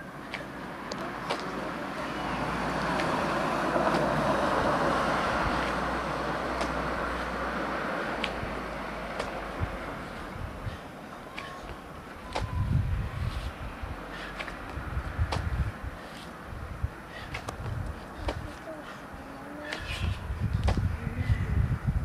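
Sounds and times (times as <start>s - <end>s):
vehicle passing: 0.0s - 22.0s.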